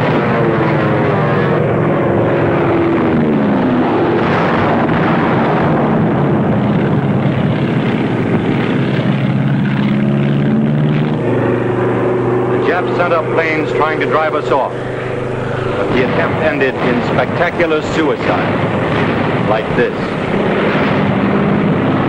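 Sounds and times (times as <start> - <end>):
noisy film soundtrack: 0.0 - 22.0
propeller plane engines: 0.0 - 22.0.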